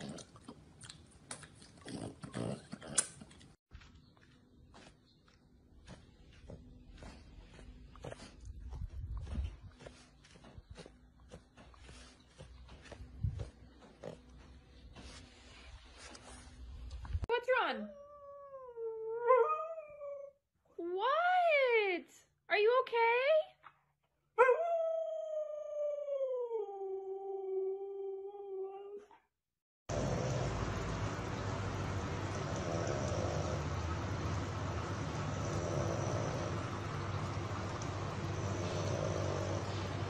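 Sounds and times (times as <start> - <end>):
dog grunting: 32.3 - 33.9, 35.1 - 36.8, 38.2 - 40.0.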